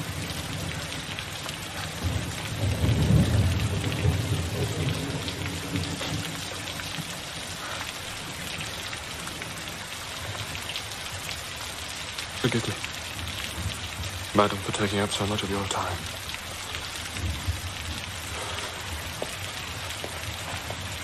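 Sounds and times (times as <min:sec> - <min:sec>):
thunder rumble: 0:00.0 - 0:08.8
heavy rain: 0:00.0 - 0:21.0.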